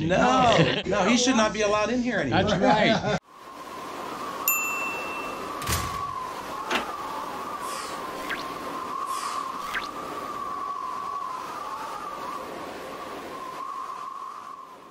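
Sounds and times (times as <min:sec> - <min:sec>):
soft hiss: 0:03.3 - 0:14.9
steady wavering tone: 0:04.2 - 0:05.6.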